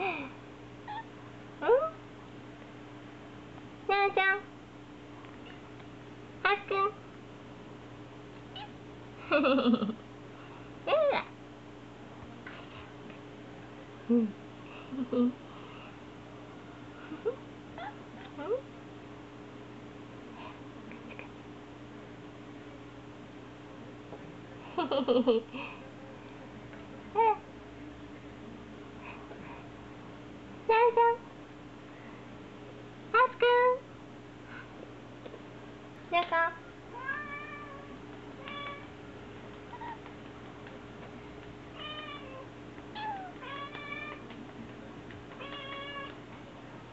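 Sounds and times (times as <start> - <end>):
kitten chirp: 8.5 - 8.8
kitten mewing: 41.8 - 44.3.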